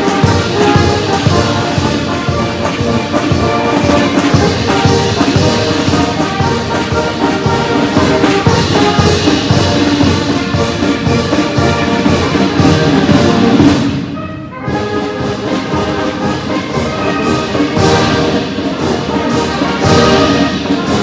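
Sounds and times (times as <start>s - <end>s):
military brass band playing: 0.0s - 21.0s
steady drum beat: 0.0s - 21.0s.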